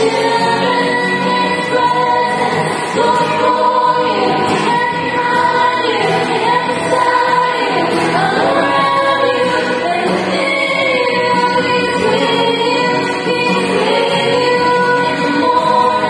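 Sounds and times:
strummed acoustic guitar: 0.0 - 16.0
women singing in harmony: 0.0 - 16.0.

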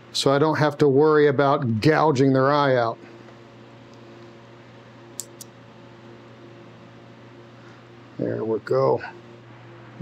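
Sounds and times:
low room hum: 0.0 - 10.0
scissors snipping hair: 5.2 - 5.5.

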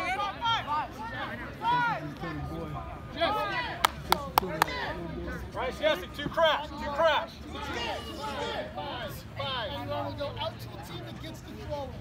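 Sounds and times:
sharp hand claps: 3.8 - 4.7.

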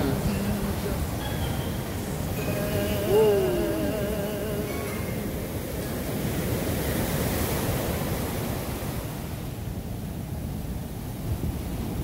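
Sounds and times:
ocean surf on sandy beach: 0.0 - 12.0
wind rumbling on microphone: 0.0 - 12.0.

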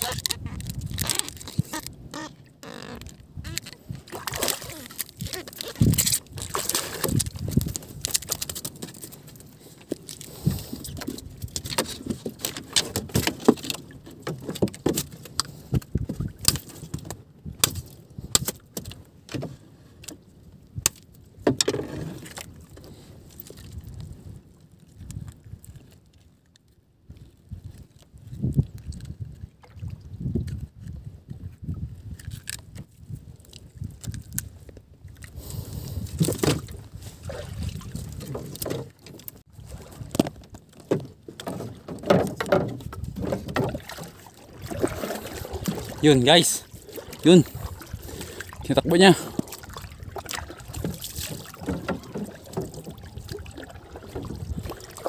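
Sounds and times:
knocks and clatter on boat: 0.0 - 20.2, 20.8 - 23.9, 36.0 - 55.0
water sloshing against boat hull: 0.0 - 55.0.

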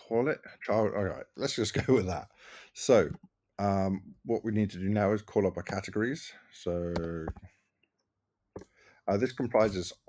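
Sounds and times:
person speaking: 0.0 - 7.4, 9.1 - 10.0.

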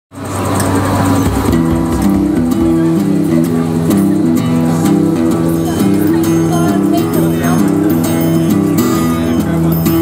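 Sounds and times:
street band music: 0.2 - 10.0.

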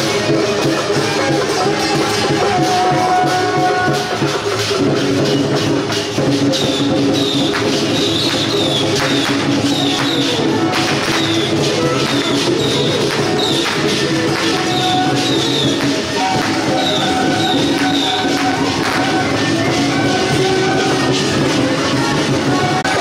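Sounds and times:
drum and cymbal strikes: 0.0 - 23.0
sustained wind instrument tones: 0.0 - 23.0.

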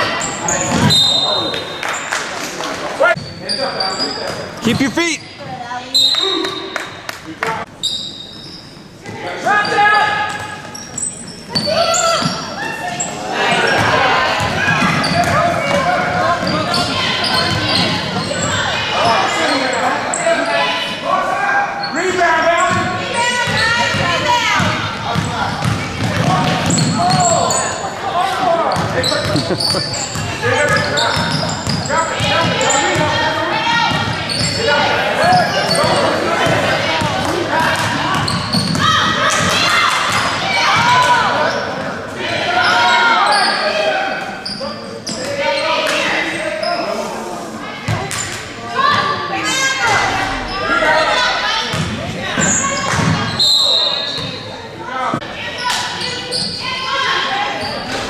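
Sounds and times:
crowd voices calling out: 9.1 - 58.0
basketball bouncing on court: 22.7 - 27.3, 30.1 - 33.2, 33.8 - 34.6, 35.3 - 41.0, 51.7 - 53.3.

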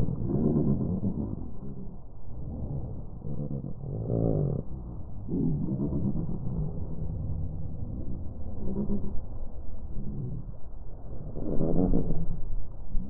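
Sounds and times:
slowed deep gull calls: 0.0 - 13.0
steady low rumble: 0.0 - 13.0.

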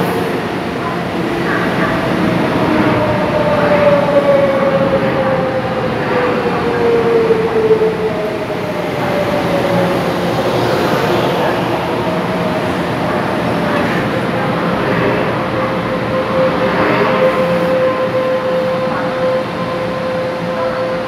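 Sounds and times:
train rail rumble: 0.0 - 21.0.

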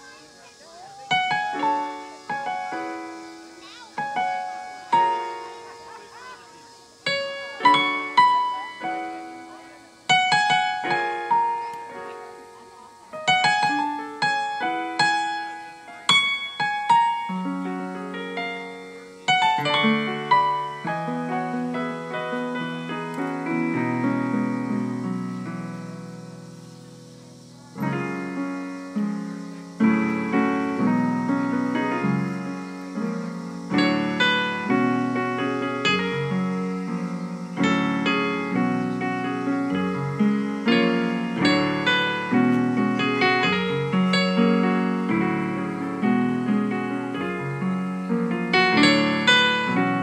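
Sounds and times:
piano chords on keyboard: 0.0 - 50.0.

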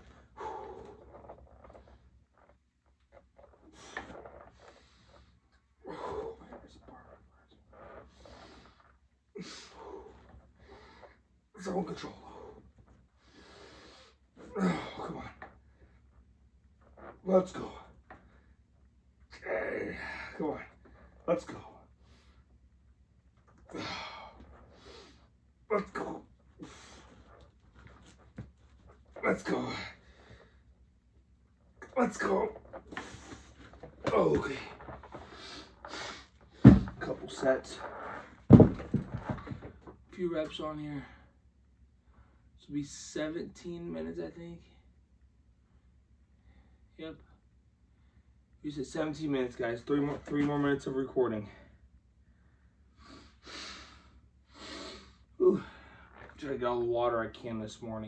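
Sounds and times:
man breathing hard: 0.0 - 1.3, 35.2 - 37.0
dumbbell thudding on floor: 36.6 - 37.1, 38.5 - 39.6.

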